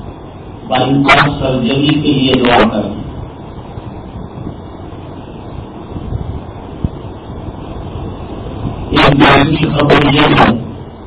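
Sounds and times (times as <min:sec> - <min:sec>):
low background rumble: 0:00.0 - 0:11.0
man talking: 0:00.7 - 0:03.0, 0:08.9 - 0:10.8.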